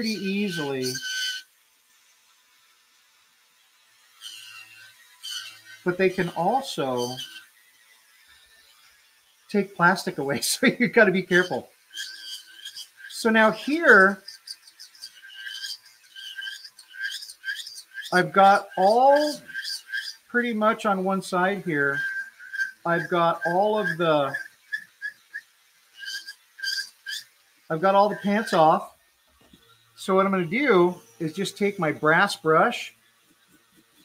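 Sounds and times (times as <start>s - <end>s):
faint motor hum: 0.0s - 34.0s
rotary tool grinding plastic: 0.0s - 34.0s.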